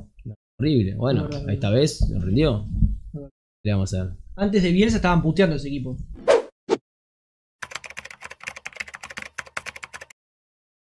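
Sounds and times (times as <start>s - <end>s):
rapid keyboard typing: 7.6s - 10.2s.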